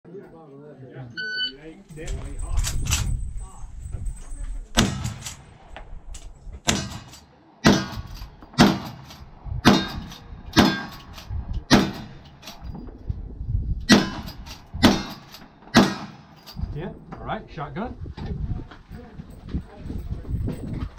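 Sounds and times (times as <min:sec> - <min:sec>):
rifle shots: 0:04.8 - 0:05.8, 0:06.6 - 0:12.6, 0:13.9 - 0:16.4.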